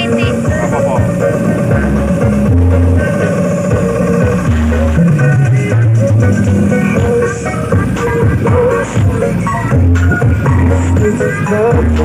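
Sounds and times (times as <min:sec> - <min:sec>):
guitar-like melody: 0:00.0 - 0:12.0
loud music with heavy bass: 0:00.0 - 0:12.0.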